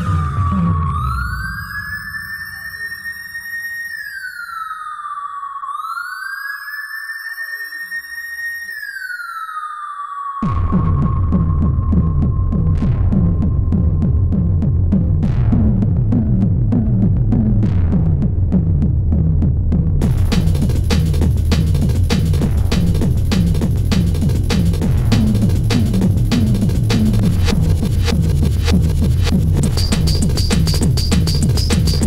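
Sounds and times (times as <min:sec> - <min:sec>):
siren-like synth tone: 0:00.0 - 0:12.4
distorted kick drum: 0:10.4 - 0:32.0.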